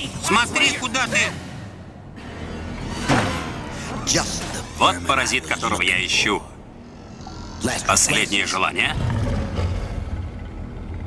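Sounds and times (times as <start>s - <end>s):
low rumbling music drone: 0.7s - 11.0s.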